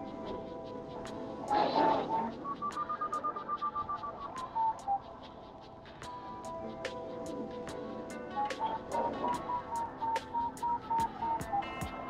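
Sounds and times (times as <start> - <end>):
background music with a beat: 0.0 - 12.0
variometer beeping rapidly: 1.4 - 5.8.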